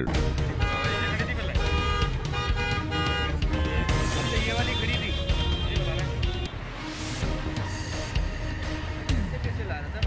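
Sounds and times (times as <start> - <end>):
car horns: 0.3 - 6.6.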